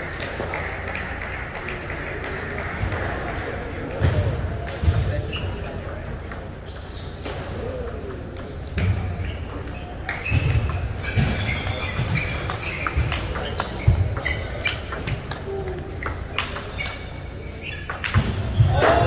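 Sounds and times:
chatter in busy hall: 0:00.0 - 0:19.0
shoe squeaks on sports floor: 0:04.4 - 0:05.8, 0:06.7 - 0:07.7, 0:09.3 - 0:15.1, 0:15.9 - 0:19.0.

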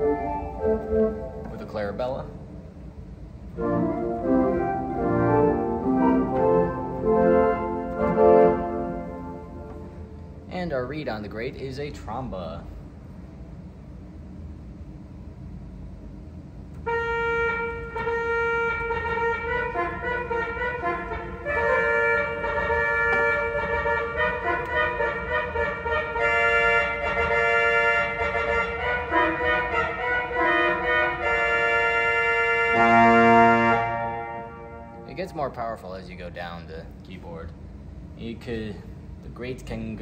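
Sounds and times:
pipe organ chords: 0:00.0 - 0:11.3, 0:16.0 - 0:36.0.

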